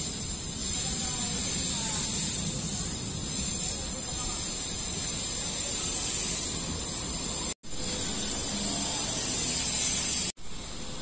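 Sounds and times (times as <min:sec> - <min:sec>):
high-pitched insect drone: 0:03.3 - 0:11.0.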